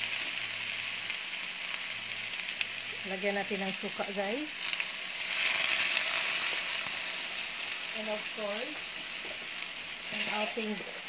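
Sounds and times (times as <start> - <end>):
shrimp sizzling in a frying pan: 0.0 - 11.0.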